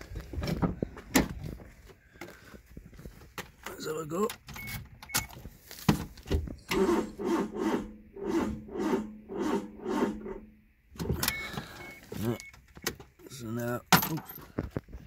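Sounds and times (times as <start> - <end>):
starter motor cranking engine: 6.6 - 10.4.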